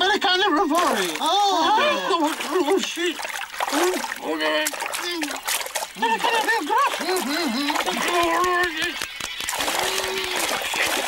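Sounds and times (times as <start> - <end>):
water splashing: 0.0 - 11.0.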